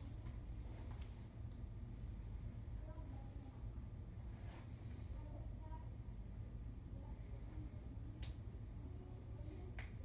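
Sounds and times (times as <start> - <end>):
steady low hum: 0.0 - 10.0
hand snaps: 8.2 - 8.4, 9.7 - 10.0.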